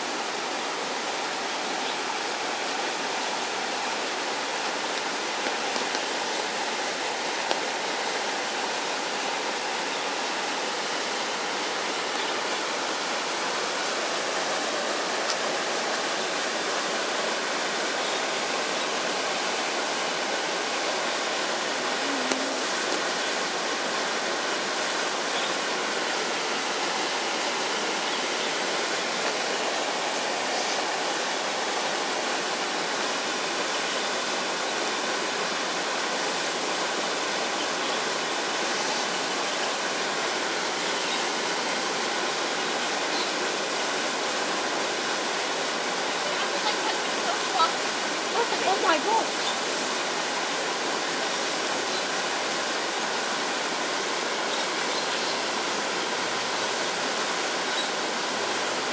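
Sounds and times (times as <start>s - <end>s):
flowing water rushing: 0.0s - 58.9s.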